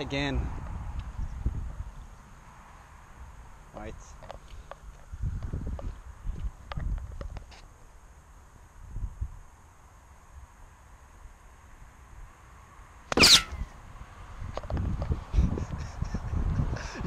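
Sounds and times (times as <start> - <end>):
golf club swish and strike: 13.1 - 13.6.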